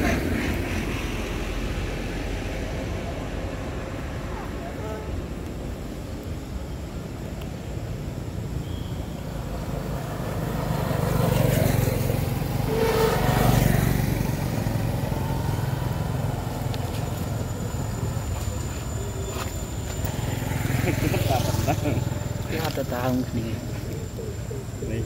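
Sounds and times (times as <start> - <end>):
vehicle engine passing: 9.4 - 25.0.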